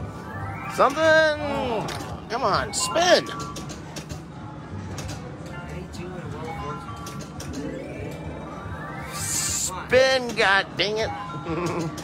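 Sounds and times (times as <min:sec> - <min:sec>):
slot machine reel-spin jingle: 0:00.0 - 0:03.7, 0:06.3 - 0:11.8.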